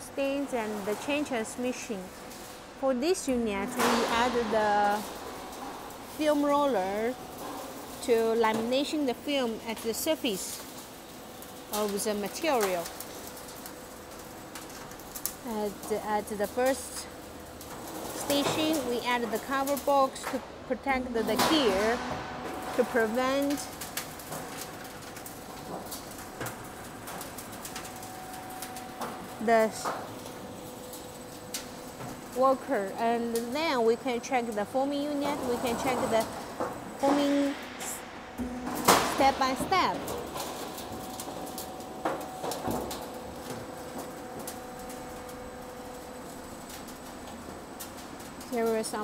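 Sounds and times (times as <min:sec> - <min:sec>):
machine hum: 0:00.0 - 0:49.0.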